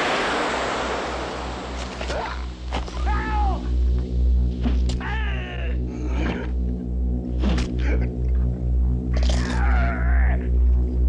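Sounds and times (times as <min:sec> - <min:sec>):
sharp hits: 0:00.0 - 0:05.3
low pulsing drone: 0:00.0 - 0:11.0.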